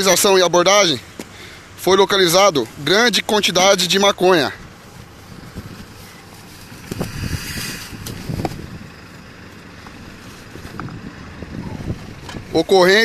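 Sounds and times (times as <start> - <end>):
plastic bag rustling: 4.8 - 8.8
wind on microphone: 5.3 - 6.0, 6.6 - 9.0, 10.5 - 12.6.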